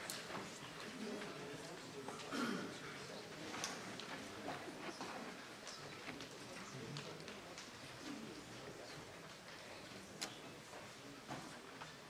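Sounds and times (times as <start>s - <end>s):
low murmur of audience: 0.0s - 12.0s.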